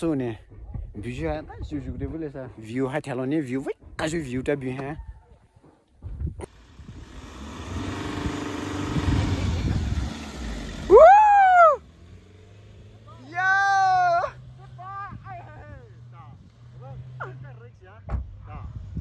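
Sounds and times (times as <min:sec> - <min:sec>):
engine revving: 0:06.4 - 0:19.0
faint low engine hum: 0:06.4 - 0:19.0
person whooping: 0:10.9 - 0:11.8, 0:13.4 - 0:14.4.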